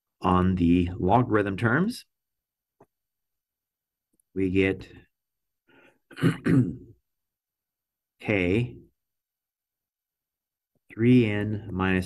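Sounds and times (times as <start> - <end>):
faint breath: 5.6 - 6.1
man clearing his throat: 6.1 - 7.0.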